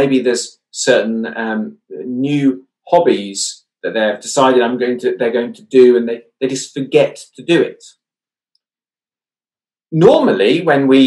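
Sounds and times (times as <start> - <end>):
man's voice: 0.0 - 7.9, 9.9 - 11.0.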